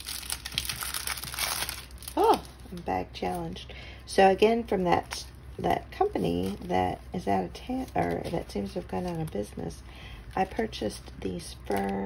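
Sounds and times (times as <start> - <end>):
plastic bag crinkling: 0.0 - 3.4, 4.7 - 12.0.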